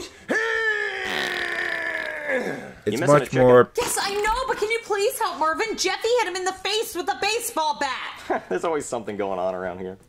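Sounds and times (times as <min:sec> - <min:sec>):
comic voice groaning: 0:00.3 - 0:03.0.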